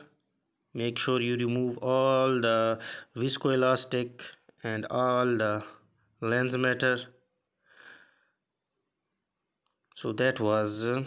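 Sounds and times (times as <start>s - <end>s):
faint short breath: 7.6s - 8.4s.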